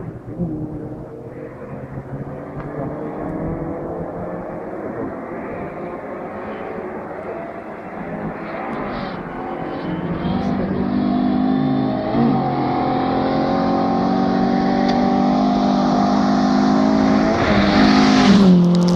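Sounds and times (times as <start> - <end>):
rally car engine accelerating: 0.0 - 18.9.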